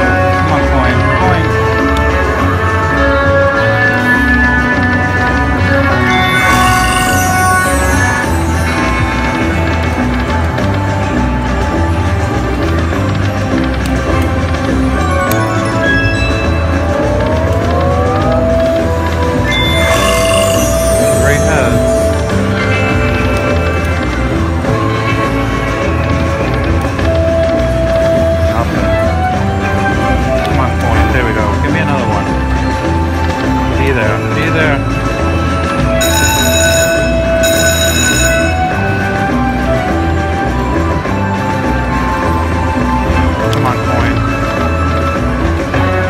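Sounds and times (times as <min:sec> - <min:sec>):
slot machine bonus music: 0:00.0 - 0:46.0.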